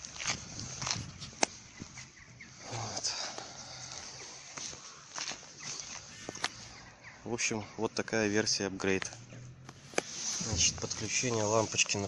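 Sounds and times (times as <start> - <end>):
footsteps on gritty ground: 0.0 - 6.8, 10.0 - 12.0
rustling handling noise: 9.0 - 12.0.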